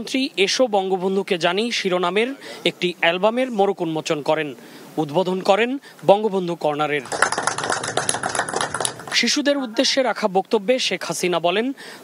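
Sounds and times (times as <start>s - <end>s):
people applauding: 7.0s - 9.4s.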